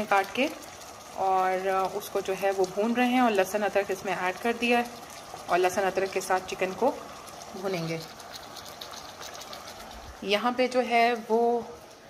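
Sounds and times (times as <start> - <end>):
chicken frying in oil: 0.0 - 12.0.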